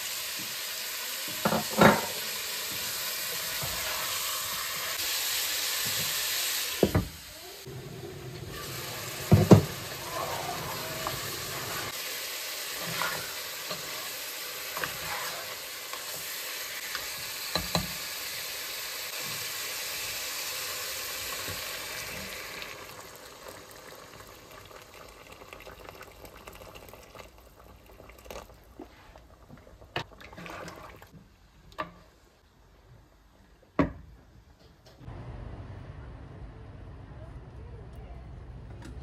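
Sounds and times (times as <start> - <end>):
stew sizzling in a pot: 0.0 - 31.2
water pouring: 22.0 - 28.8, 30.0 - 31.1
stew bubbling: 22.0 - 31.2.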